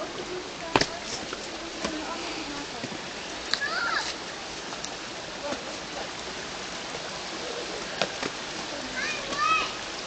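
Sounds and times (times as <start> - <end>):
faint voices: 0.0 - 4.2
waterfall rushing hiss: 0.0 - 10.0.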